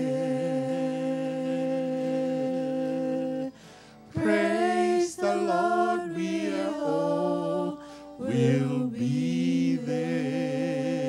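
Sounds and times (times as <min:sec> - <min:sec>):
vocal group holding chord: 0:00.0 - 0:11.0.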